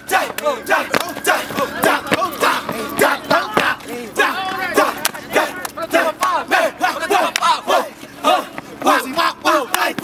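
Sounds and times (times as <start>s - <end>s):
voices shouting chant calls: 0.0s - 10.0s.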